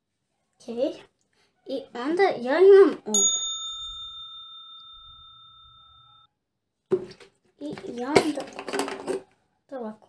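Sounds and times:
bright bell ding: 3.1s - 6.3s.

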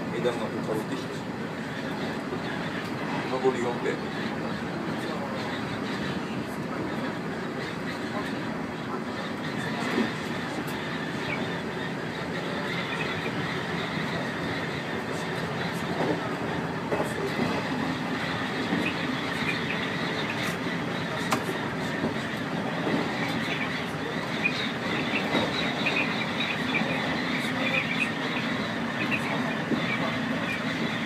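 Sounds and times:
train wheels rumbling on rail: 0.0s - 31.0s.

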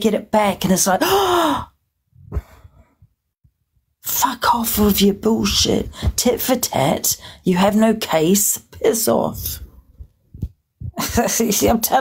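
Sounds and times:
woman gasping: 1.0s - 3.0s, 5.8s - 6.2s.

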